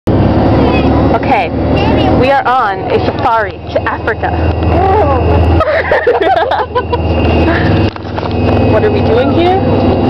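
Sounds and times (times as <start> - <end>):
bus engine: 0.0 - 10.0
road noise: 0.1 - 10.0.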